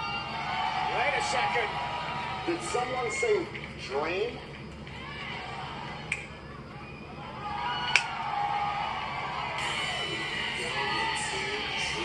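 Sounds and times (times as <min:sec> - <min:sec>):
arena crowd noise: 0:00.0 - 0:12.0
entrance music: 0:09.3 - 0:12.0.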